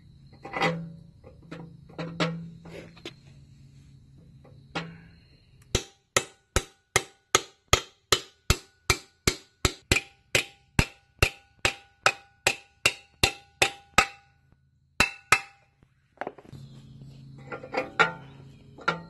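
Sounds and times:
hammer striking metal muffler: 5.7 - 15.8.

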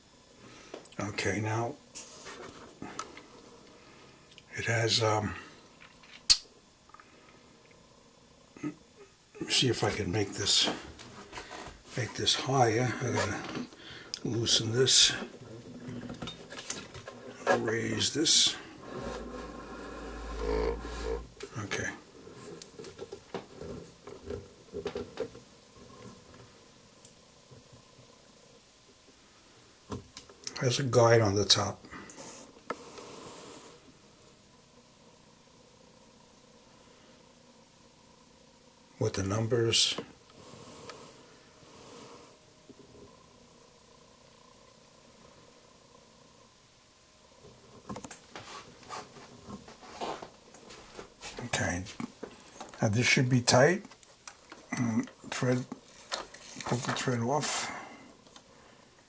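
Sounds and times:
faint steady hum: 0.0 - 59.0.

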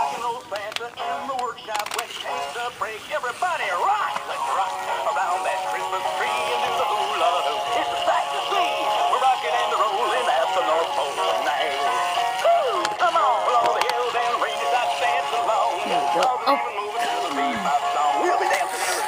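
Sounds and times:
synthetic singing voices: 0.0 - 19.0.

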